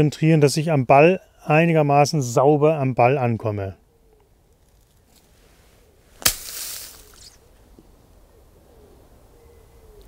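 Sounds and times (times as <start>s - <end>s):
leaves rustling: 4.5s - 8.4s
golf club striking ball: 6.2s - 7.3s.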